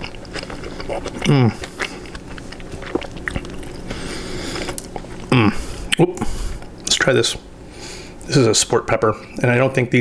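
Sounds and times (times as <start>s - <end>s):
person chewing food: 0.0s - 6.9s.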